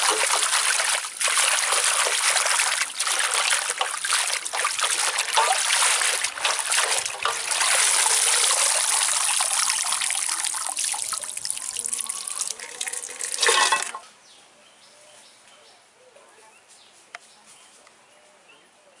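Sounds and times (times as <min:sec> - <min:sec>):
loud splash: 0:00.0 - 0:11.1
water dripping off leaves: 0:00.0 - 0:13.8
water sloshing in metal basin: 0:00.0 - 0:14.0.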